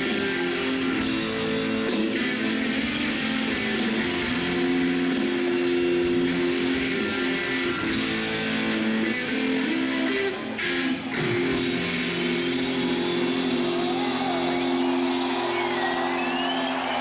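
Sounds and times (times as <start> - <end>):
electric guitar playing: 0.0 - 16.2
audience whistles: 11.8 - 17.0.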